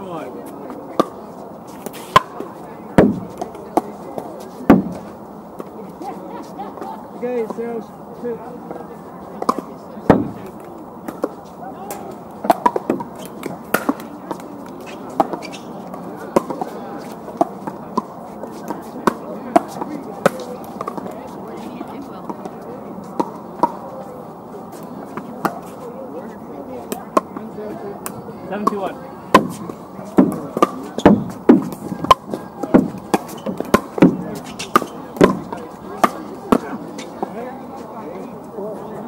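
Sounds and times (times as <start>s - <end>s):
murmur of distant voices: 0.0s - 39.0s
paddles hitting plastic balls: 28.6s - 36.8s.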